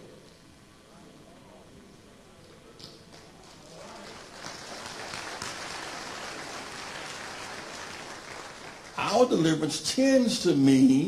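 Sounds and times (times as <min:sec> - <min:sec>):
congregation applauding: 0:03.1 - 0:09.7.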